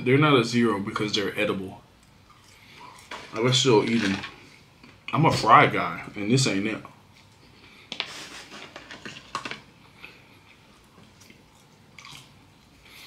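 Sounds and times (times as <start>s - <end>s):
chewing french fries: 2.0s - 3.5s, 9.9s - 13.0s.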